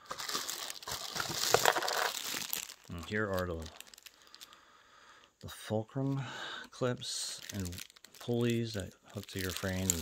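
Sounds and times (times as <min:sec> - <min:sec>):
plastic bag crinkling: 0:00.0 - 0:04.6, 0:07.2 - 0:10.0.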